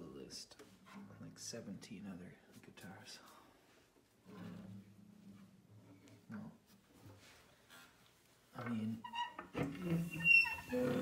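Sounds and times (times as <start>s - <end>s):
man speaking quietly: 0.0s - 3.5s.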